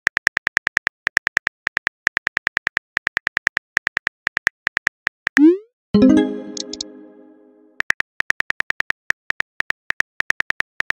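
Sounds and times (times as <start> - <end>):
message chime tone: 5.4 - 7.7.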